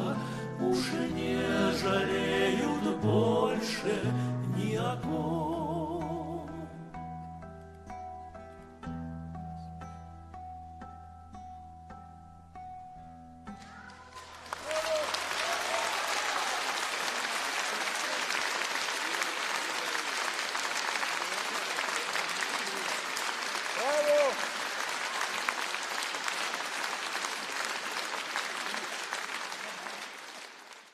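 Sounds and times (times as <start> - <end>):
audience applauding: 13.6 - 30.9.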